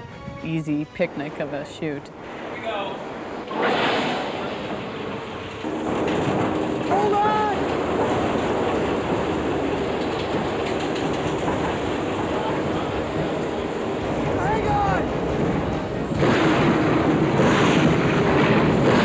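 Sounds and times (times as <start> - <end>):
rushing wind from fans: 0.0 - 19.0
steady drone: 0.0 - 19.0.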